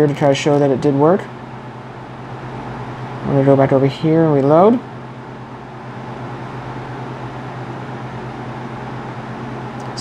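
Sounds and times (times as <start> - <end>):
room noise hiss: 0.0 - 10.0
steady low hum: 0.0 - 10.0.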